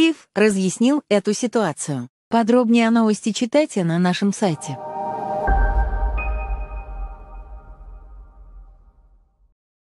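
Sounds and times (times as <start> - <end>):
high ringing tone: 4.5 - 8.8
held electronic chord: 4.6 - 8.6
deep low boom: 4.8 - 9.3.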